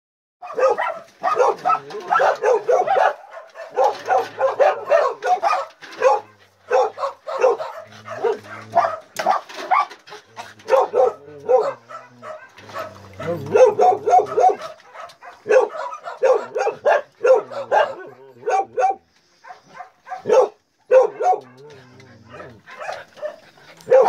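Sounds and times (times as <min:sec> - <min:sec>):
dogs barking: 0:00.4 - 0:24.0.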